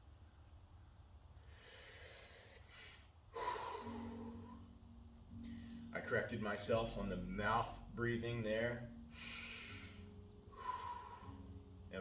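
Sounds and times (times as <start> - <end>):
man breathing: 1.4 - 5.9, 9.1 - 11.6
low hum: 2.2 - 12.0.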